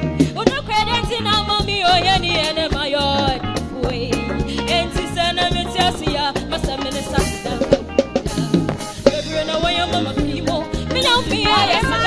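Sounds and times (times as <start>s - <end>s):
gospel band playing: 0.0s - 12.0s.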